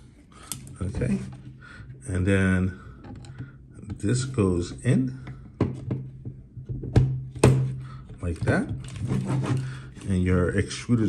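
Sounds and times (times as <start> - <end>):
plastic parts clicking and knocking: 4.8 - 10.1.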